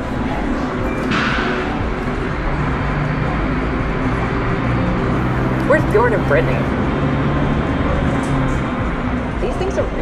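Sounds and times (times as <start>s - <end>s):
indistinct voices: 0.0s - 7.0s
low hum: 0.0s - 10.0s.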